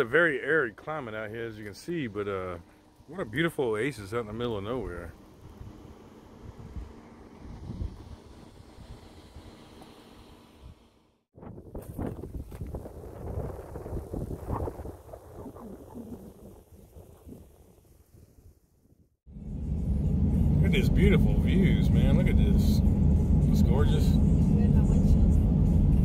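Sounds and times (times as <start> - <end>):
wind buffeting microphone: 5.4 - 9.6, 11.4 - 18.6.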